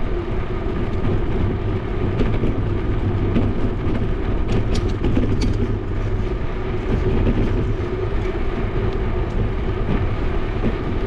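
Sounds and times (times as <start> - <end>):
bicycle rolling over asphalt: 0.0 - 11.0
wind on microphone: 0.0 - 11.0.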